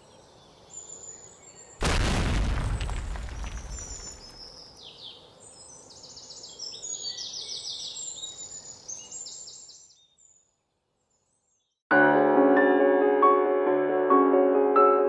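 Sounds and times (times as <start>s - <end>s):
songbirds trilling and chirping: 0.0s - 1.9s, 3.4s - 11.8s
music: 11.9s - 15.0s.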